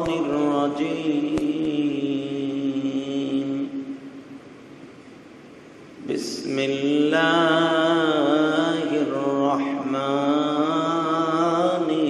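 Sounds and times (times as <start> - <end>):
man chanting a long sung note: 0.0 - 4.1, 6.0 - 12.0.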